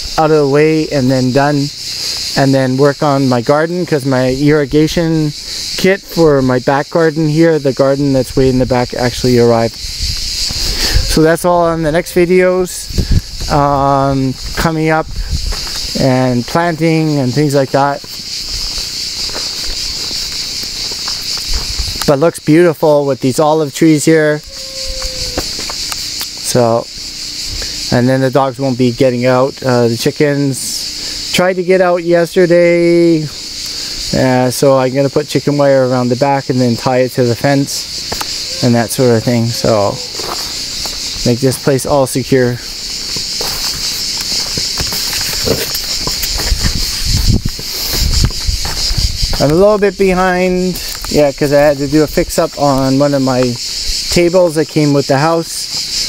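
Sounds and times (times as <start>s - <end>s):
insects shrilling: 0.0s - 56.0s
high-pitched insect shrilling: 9.2s - 13.9s, 24.0s - 28.0s, 37.4s - 49.4s
footsteps on dry ground: 14.2s - 22.0s, 37.9s - 41.7s, 42.7s - 49.6s.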